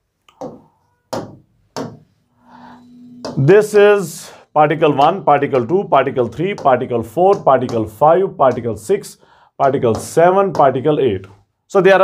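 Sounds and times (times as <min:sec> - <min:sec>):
stylus tapping on touch screen: 0:00.3 - 0:02.1, 0:05.0 - 0:08.8, 0:09.6 - 0:10.9.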